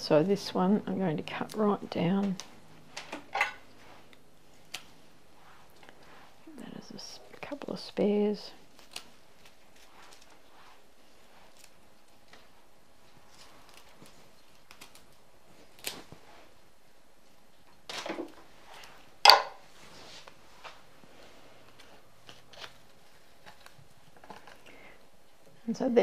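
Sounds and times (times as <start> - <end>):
flower stems rustling: 0.3 - 26.0.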